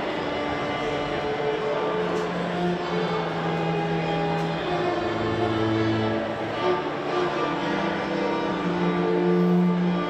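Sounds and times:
string ensemble playing: 0.0s - 10.0s.

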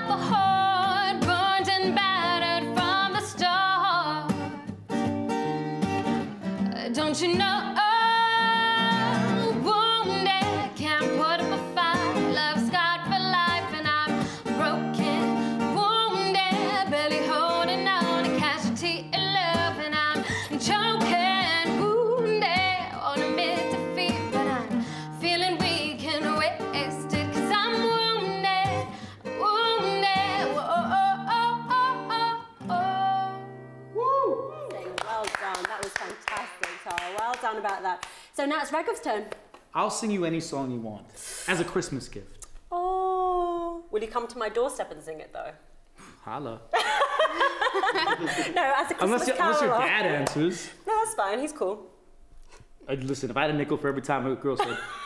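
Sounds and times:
woman singing: 0.0s - 4.5s, 6.6s - 36.4s
acoustic guitar chords: 0.0s - 34.0s.

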